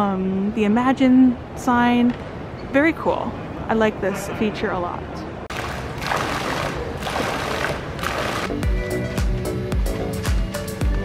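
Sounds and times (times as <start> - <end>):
fountain water splashing: 5.5 - 8.5
background music with steady beat: 8.4 - 11.0.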